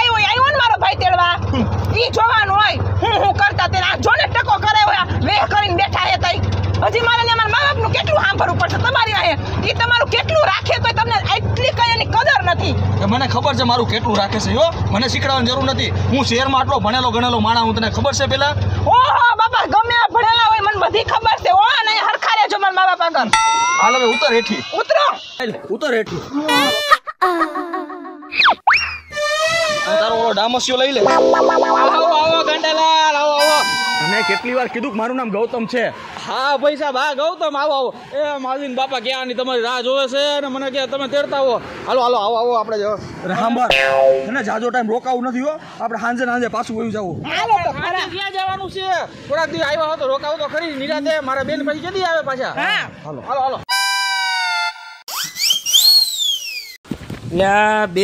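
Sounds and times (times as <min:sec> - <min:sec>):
wobbling pitched tones: 0:31.0 - 0:34.6, 0:43.7 - 0:44.7
sliding whistle sound: 0:33.4 - 0:34.4, 0:53.7 - 0:56.8
sliding boing glide: 0:43.7 - 0:44.4.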